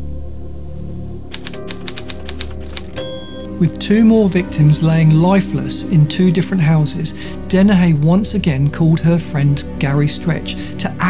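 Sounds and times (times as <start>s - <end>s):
typewriter keystrokes clacking: 1.3s - 3.5s.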